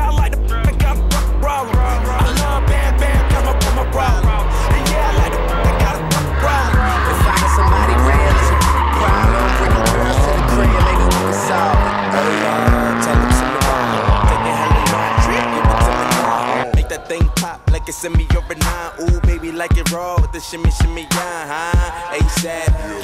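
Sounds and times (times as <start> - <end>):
car engine revving: 0.0 - 23.0
tyres squealing: 0.0 - 23.0.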